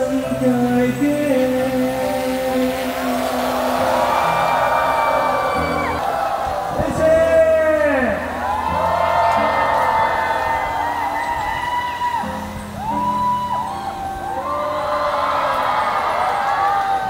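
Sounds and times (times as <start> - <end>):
crowd calling out and cheering: 0.0 - 17.0.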